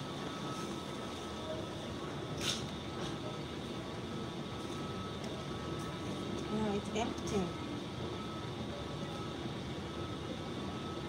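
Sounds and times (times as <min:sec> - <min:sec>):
faint steady tone: 0:00.0 - 0:11.0
terminal hall background hum: 0:00.0 - 0:11.0.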